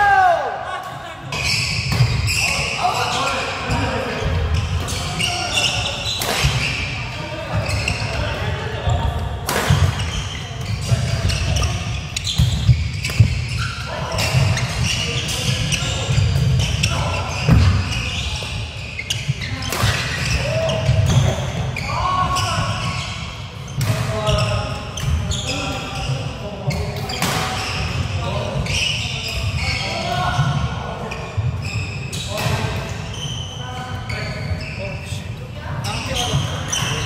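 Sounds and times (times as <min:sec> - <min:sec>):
players' voices: 0:00.0 - 0:37.0.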